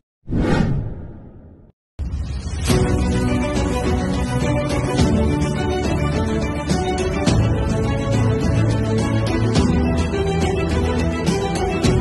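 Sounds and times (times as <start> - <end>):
transition whoosh: 0.3 - 2.6.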